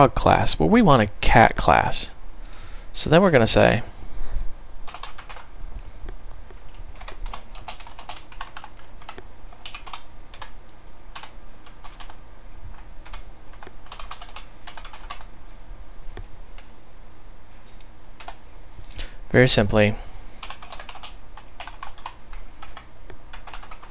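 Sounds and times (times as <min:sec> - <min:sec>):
computer keyboard typing: 0:04.8 - 0:05.5, 0:06.5 - 0:15.3, 0:18.2 - 0:18.4, 0:20.4 - 0:23.9.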